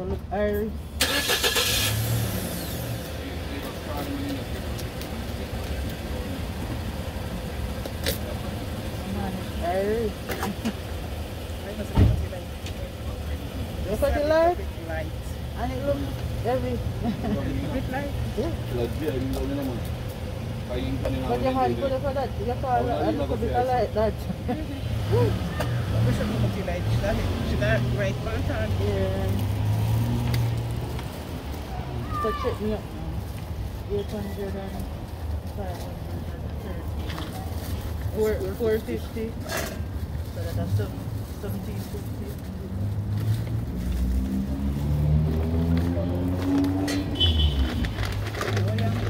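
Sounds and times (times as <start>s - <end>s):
vehicle engine hum: 0.0s - 49.0s.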